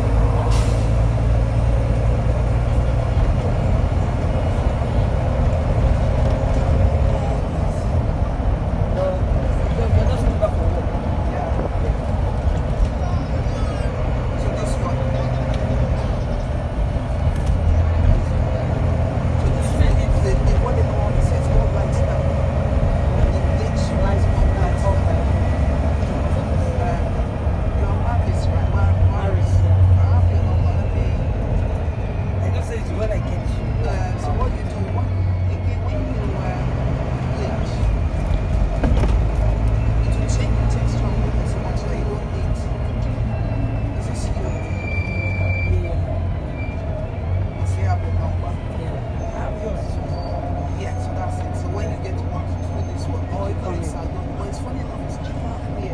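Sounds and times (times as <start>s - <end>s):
diesel bus engine droning: 0.0s - 55.9s.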